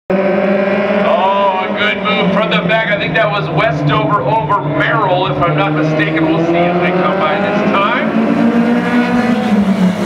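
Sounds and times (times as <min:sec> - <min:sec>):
race car engines: 0:00.1 - 0:10.0
man's voice: 0:01.0 - 0:08.2.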